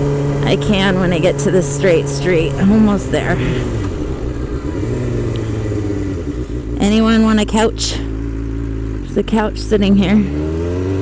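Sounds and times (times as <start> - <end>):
motorcycle engine running: 0.0 - 11.0
woman's voice: 0.4 - 3.7, 6.8 - 8.1, 9.0 - 10.4.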